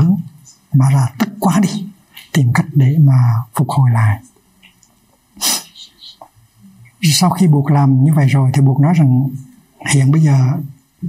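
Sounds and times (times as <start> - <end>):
faint puff of breath: 5.4 - 5.9.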